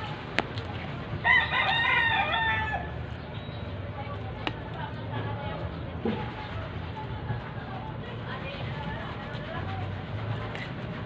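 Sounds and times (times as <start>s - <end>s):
rooster crowing: 1.2s - 3.0s.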